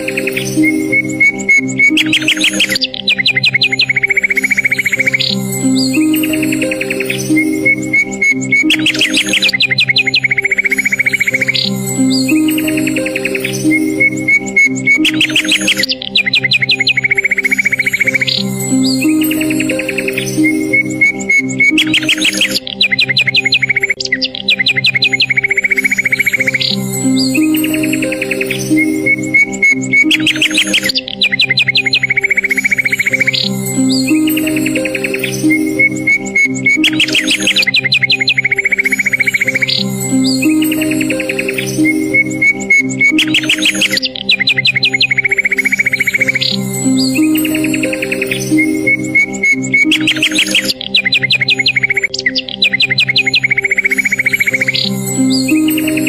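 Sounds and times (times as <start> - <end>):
bird chirps and trills: 0.0 - 56.0
relaxing instrumental music: 0.0 - 56.0.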